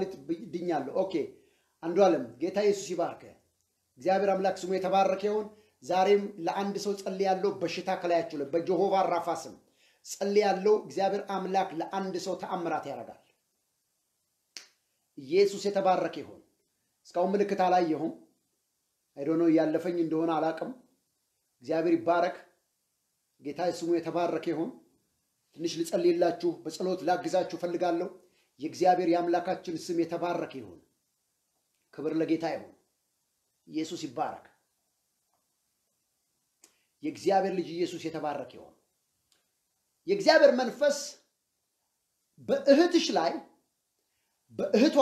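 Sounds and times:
faint click: 36.6s - 36.9s, 39.2s - 39.5s.

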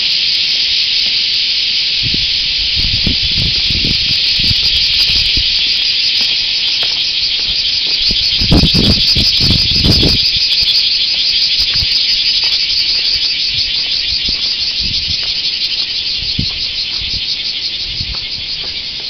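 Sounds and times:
insects trilling: 0.0s - 19.0s.

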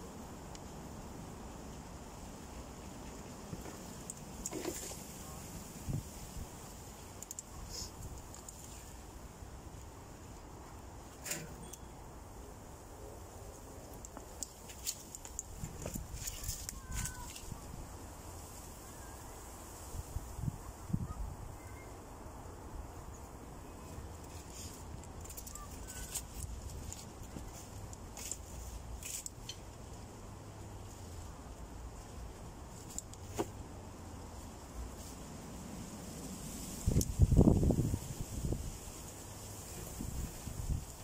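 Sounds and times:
crackles and rustles of wood: 0.4s - 11.8s, 13.5s - 18.8s, 23.7s - 41.0s
wind rumbling on microphone: 5.2s - 9.0s, 19.5s - 21.8s, 35.8s - 39.0s, 39.6s - 41.0s
faint bird chirps: 20.4s - 22.0s.

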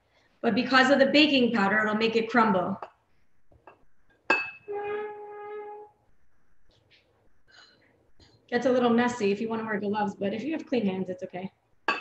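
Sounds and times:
steady pitched tone: 3.2s - 7.5s
clink against glass bowl: 4.3s - 4.7s.

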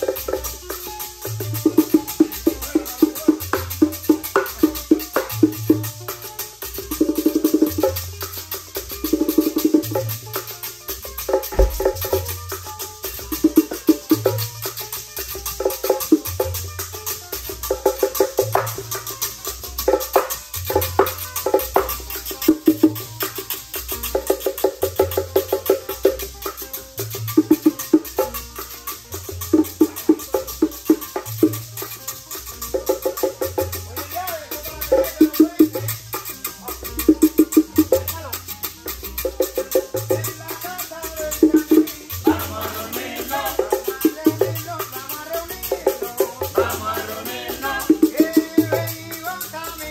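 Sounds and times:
bongos: 0.0s - 49.9s
low bass line from marimbula: 0.0s - 49.9s
maracas: 0.0s - 49.9s.

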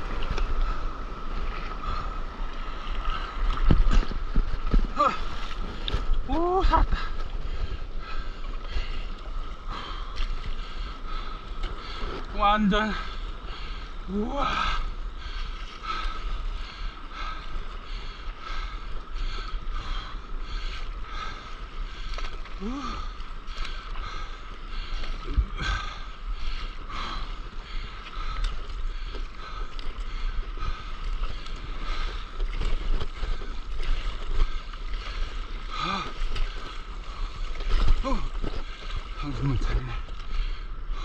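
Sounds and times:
paddle strokes in water: 0.0s - 41.0s
water splashing and sloshing: 0.0s - 41.0s.

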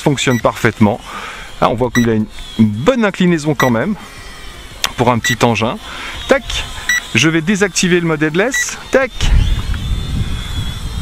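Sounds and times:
quadcopter propellers whining: 0.0s - 11.0s
wind buffeting microphone: 8.8s - 11.0s.

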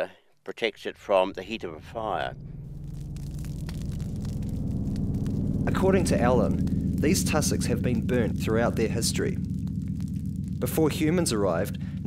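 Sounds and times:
low steady rumble: 0.7s - 12.0s
fire crackling: 1.1s - 12.0s.

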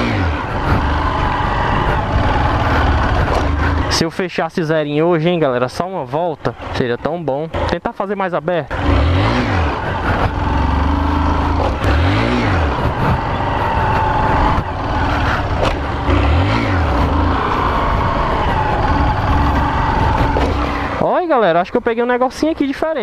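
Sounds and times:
motorcycle engine revving: 0.0s - 4.1s, 6.5s - 7.9s, 8.6s - 21.5s.

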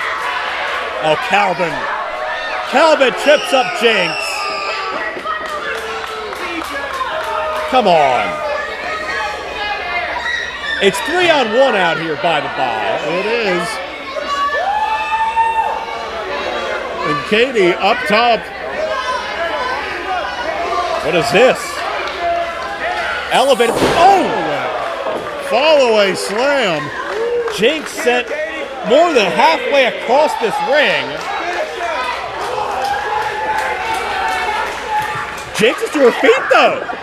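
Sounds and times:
crowd chattering and shouting: 0.0s - 37.0s.

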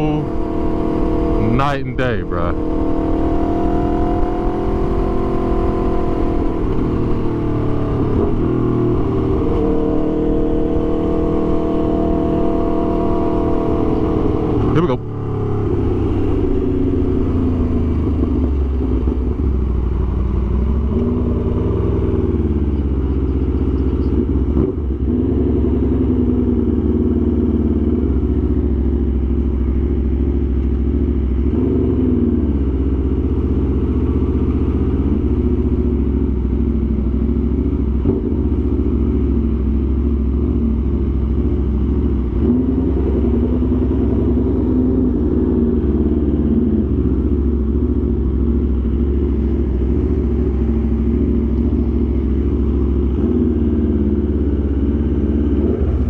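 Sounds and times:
motorcycle engine running at low revs: 0.0s - 56.0s.

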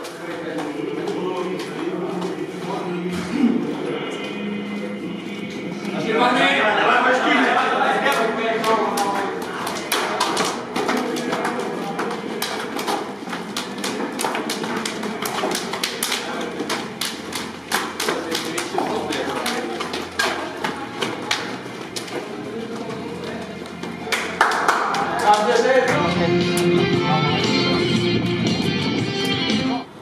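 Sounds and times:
murmur of voices: 0.0s - 30.0s.

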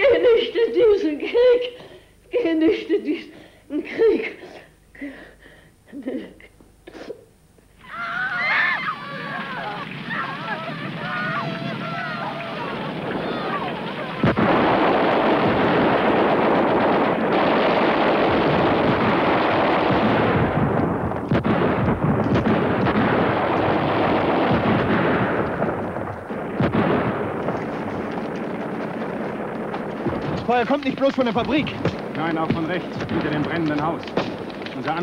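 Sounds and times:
heavy battle gunfire: 8.5s - 35.0s
single sharp gunshots: 13.0s - 35.0s.

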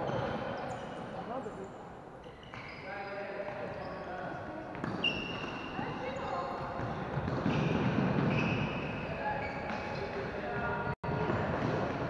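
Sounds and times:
sneaker squeaks: 0.0s - 11.7s.

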